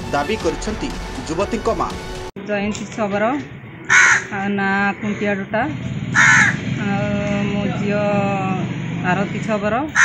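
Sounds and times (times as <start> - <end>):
crow cawing: 3.9 - 4.4, 6.1 - 6.7.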